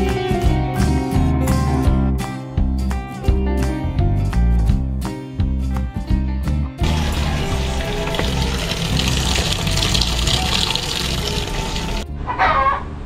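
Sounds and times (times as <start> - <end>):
background music: 0.0 - 12.4
water pouring into washing machine: 6.8 - 12.0.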